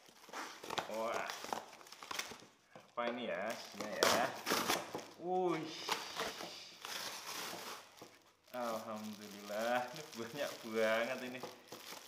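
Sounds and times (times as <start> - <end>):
cardboard ripping and crinkling: 0.0 - 2.4, 3.4 - 12.0.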